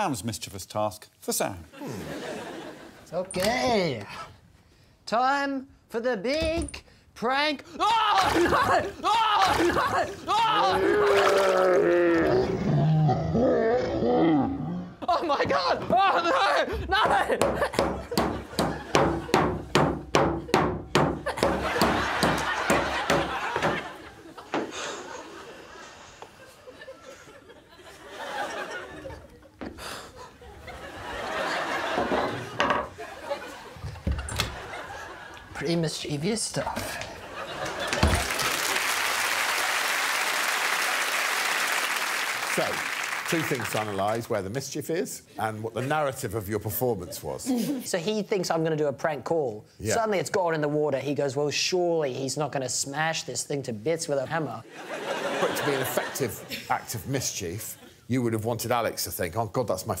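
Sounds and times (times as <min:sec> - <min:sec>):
person crying out with laughter: 0:07.8 - 0:12.4
audience applauding: 0:37.5 - 0:44.3.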